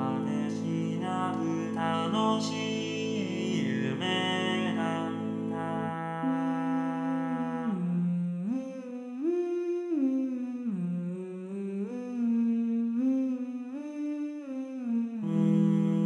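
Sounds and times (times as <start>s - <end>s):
synthesized male voices singing chords: 0.0s - 8.7s.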